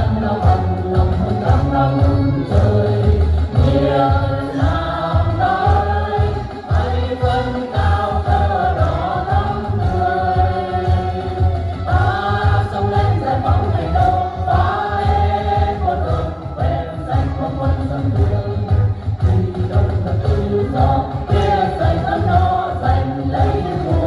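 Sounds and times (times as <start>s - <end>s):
backing track with bass beat: 0.0s - 24.0s
group singing into microphones: 0.0s - 24.0s.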